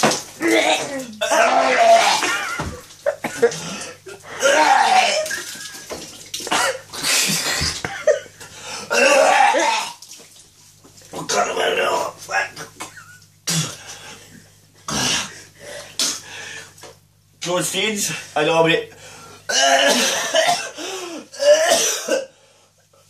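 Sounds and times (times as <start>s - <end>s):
man gagging and retching: 0.0s - 10.1s, 11.2s - 14.0s, 19.5s - 22.3s.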